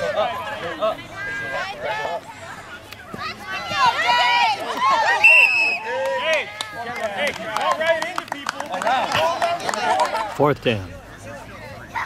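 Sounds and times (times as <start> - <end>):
people shouting: 3.2 - 6.9
referee's whistle: 5.1 - 5.9.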